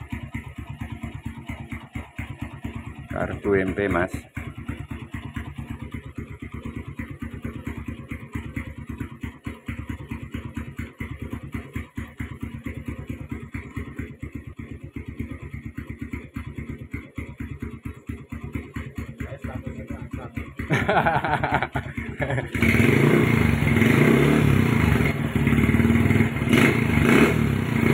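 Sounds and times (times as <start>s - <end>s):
motorcycle engine idling: 0.0s - 27.9s.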